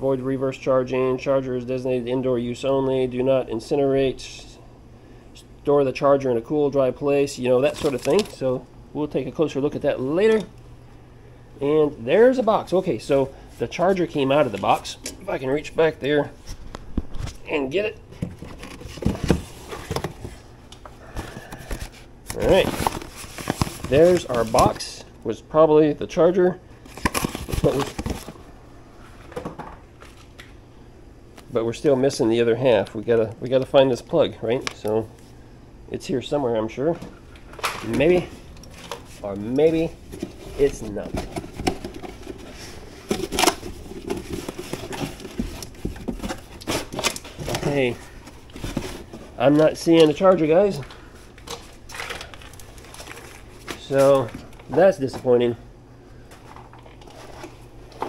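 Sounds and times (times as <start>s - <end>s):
rustling cardboard and packing wrap: 7.6s - 8.4s, 18.2s - 24.8s, 26.9s - 28.4s, 37.9s - 54.4s
cardboard rustling and knocking: 18.2s - 20.4s, 39.7s - 47.7s.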